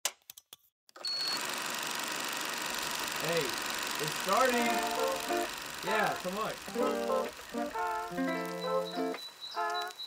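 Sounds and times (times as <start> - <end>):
tape deck mechanical clicks: 3.2 - 10.0
tape hiss: 4.2 - 10.0.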